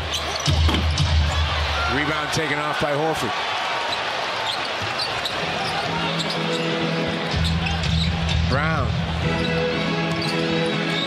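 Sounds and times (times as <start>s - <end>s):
sneaker squeaks: 0.0s - 1.0s, 3.9s - 8.2s, 9.4s - 11.0s
crowd din: 3.9s - 11.0s
arena music: 5.5s - 11.0s.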